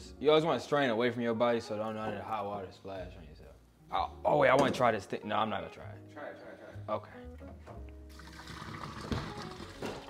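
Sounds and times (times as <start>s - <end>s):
water pouring through colander: 8.1s - 10.0s
water splashing into steel sink: 8.1s - 10.0s.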